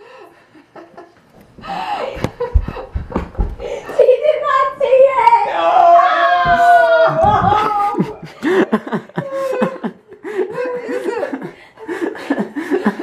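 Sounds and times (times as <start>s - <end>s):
people laughing: 6.4s - 13.0s.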